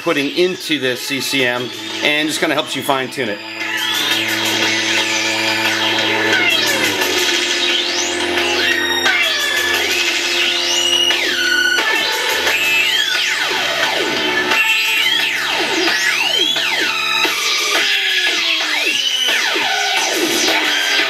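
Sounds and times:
synth pitch glides: 0.8 - 19.2
low synth bass notes: 1.5 - 17.3.

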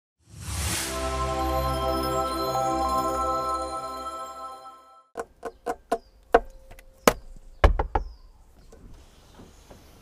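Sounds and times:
sharp knocks and clicks: 5.2 - 8.8.

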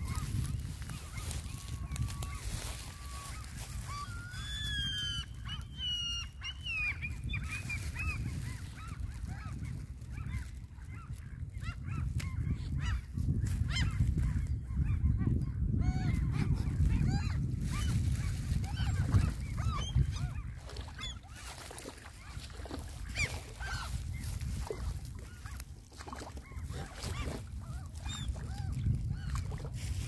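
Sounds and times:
waterfowl calling: 0.0 - 11.8, 18.6 - 29.7
wind rumble on microphone: 0.0 - 30.0.

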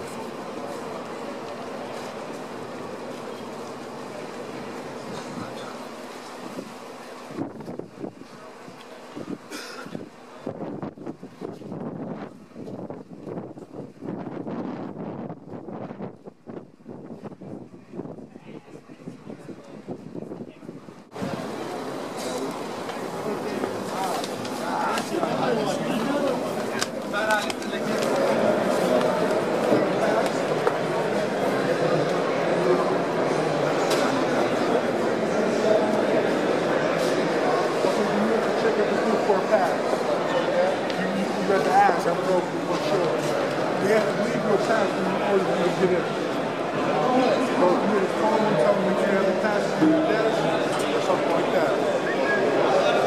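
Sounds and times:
crowd chatter: 0.0 - 53.0
wind buffeting microphone: 10.4 - 21.6.

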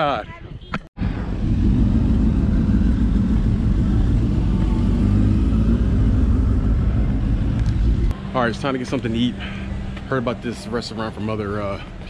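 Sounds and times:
motorcycle engine running at low revs: 1.0 - 8.2.

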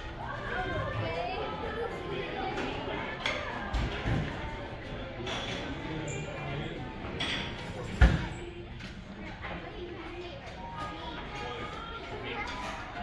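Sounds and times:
chatter of diners: 0.0 - 13.0.

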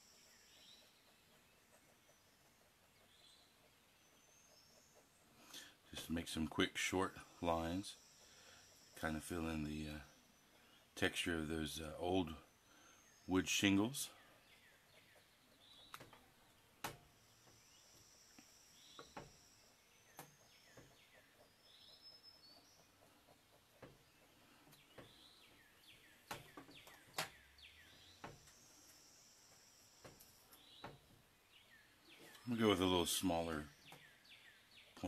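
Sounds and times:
faint birds chirping: 0.0 - 35.0.

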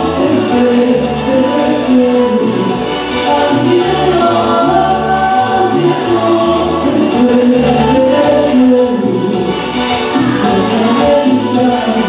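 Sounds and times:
cumbia band playing: 0.0 - 12.0
repeating bass line: 0.0 - 12.0
woman singing: 3.3 - 12.0.

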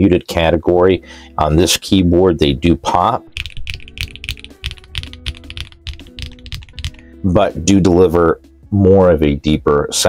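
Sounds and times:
typing on a mechanical keyboard: 3.4 - 7.0.

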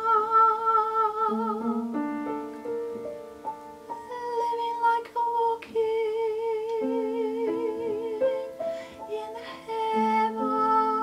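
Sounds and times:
upright piano chords: 0.0 - 11.0.

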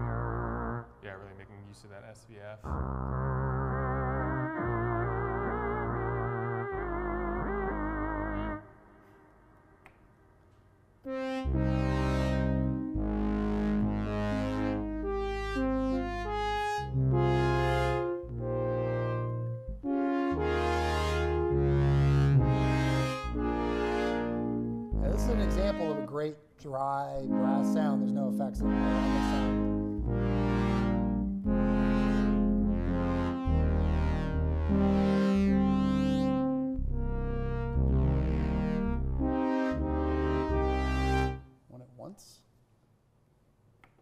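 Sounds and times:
synthesizer held wavering chords: 0.0 - 0.9, 2.7 - 8.9, 11.1 - 26.3, 27.2 - 41.6
synth brass chords: 0.0 - 9.2, 11.0 - 41.6.

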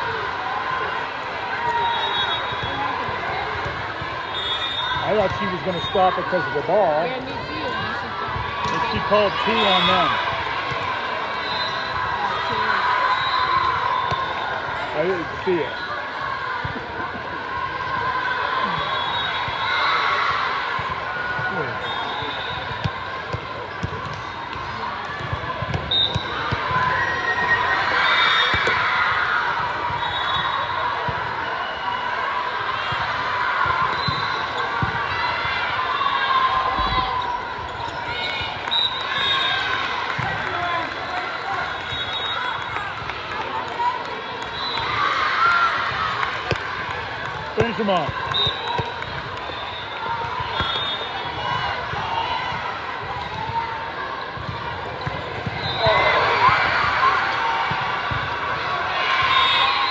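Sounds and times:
volleyballs hit and bouncing: 7.0 - 11.1, 20.2 - 27.6, 28.4 - 30.0, 32.8 - 35.7, 39.8 - 42.0, 42.6 - 58.9.

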